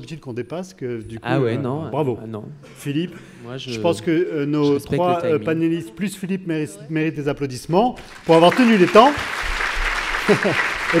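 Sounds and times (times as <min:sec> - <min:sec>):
audience applauding: 0:08.0 - 0:11.0
audience laughing: 0:10.1 - 0:11.0.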